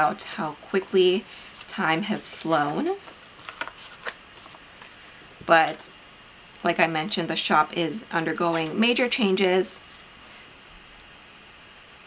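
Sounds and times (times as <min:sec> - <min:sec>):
paper rustling and crackling: 0:01.4 - 0:04.9.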